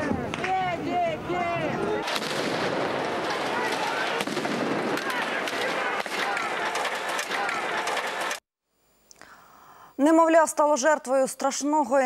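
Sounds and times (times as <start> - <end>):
street clash noise: 0.0 - 8.4
sharp bangs: 2.0 - 8.4
crowd of men shouting: 3.1 - 8.4.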